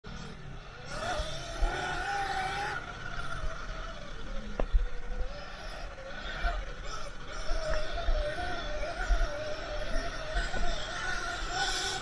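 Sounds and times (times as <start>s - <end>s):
electric motor whine: 0.1s - 12.0s
low uneven rumble: 0.1s - 12.0s.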